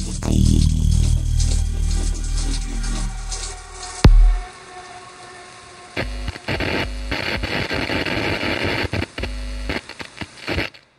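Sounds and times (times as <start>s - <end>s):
deep bass hit: 0.0s - 4.5s
low bass pulses: 0.0s - 4.8s.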